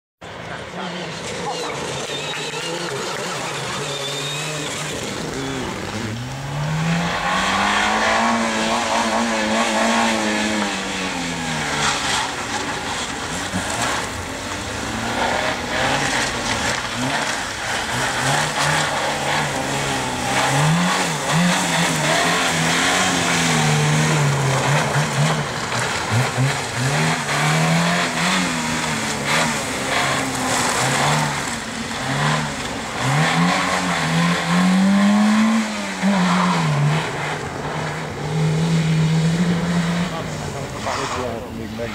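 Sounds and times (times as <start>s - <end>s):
car engine revving hard: 0.9s - 41.9s.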